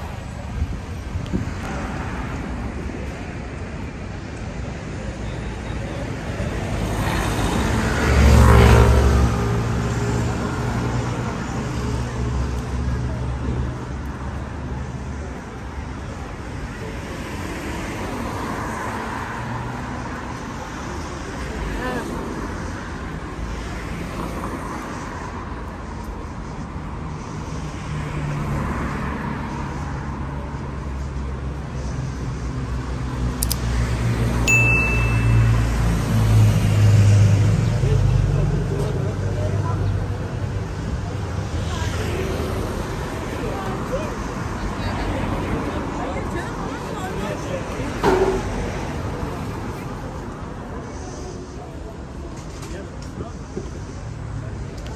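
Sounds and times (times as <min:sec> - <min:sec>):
bus passing: 0:00.0 - 0:54.9
road traffic: 0:00.0 - 0:54.9
short high beep: 0:34.5 - 0:36.3.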